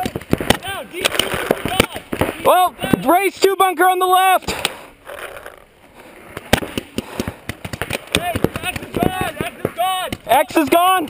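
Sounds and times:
paintball markers firing: 0.0s - 3.1s, 6.3s - 11.0s
players shouting: 0.0s - 4.5s, 8.1s - 11.0s.

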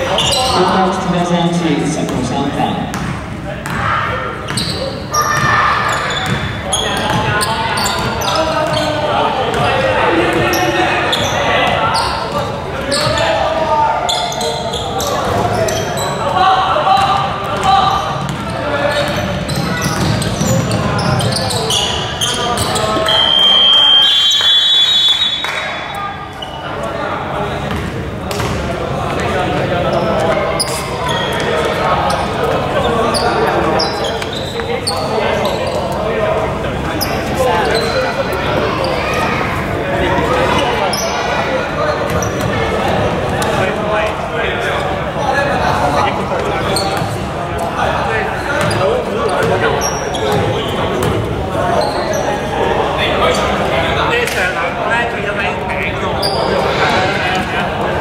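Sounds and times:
players and spectators voices: 0.0s - 58.0s
basketball bouncing: 2.8s - 3.9s, 6.2s - 7.3s, 18.2s - 20.9s
referee's whistle: 23.0s - 26.6s.

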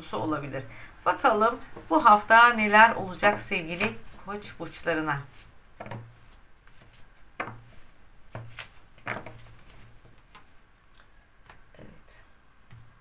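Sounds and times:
cards tapping and rubbing: 5.3s - 10.5s.

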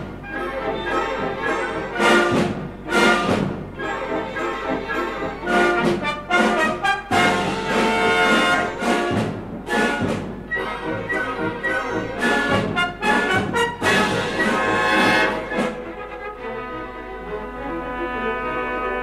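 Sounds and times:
symphony orchestra playing lively: 0.0s - 19.0s.

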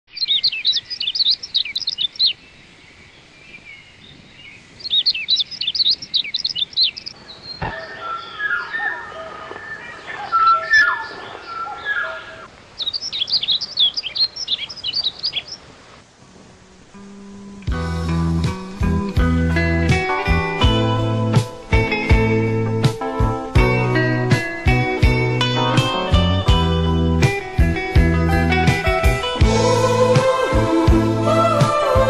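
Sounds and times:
birds chirping high calls: 0.1s - 15.7s
lower bird calls: 0.1s - 15.7s.

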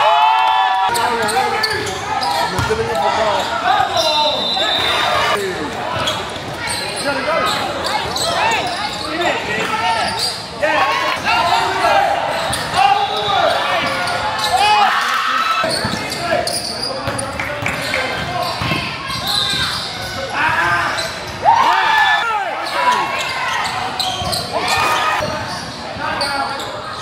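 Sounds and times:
sneakers squeaking: 0.9s - 27.0s
basketball bouncing on court: 17.0s - 19.9s.

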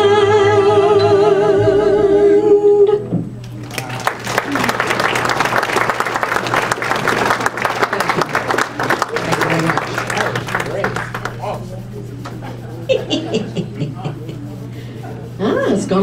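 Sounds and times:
audience applause: 3.5s - 11.6s.

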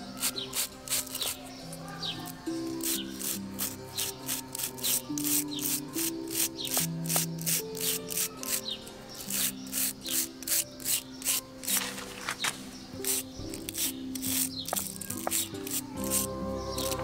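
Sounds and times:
background music: 0.0s - 17.0s
stiff brush scrubbing bark: 0.0s - 17.0s.

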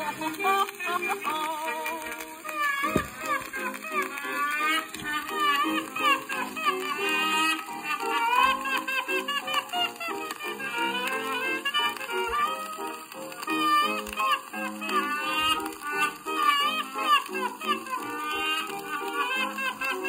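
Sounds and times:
old record of band music: 0.0s - 20.0s.

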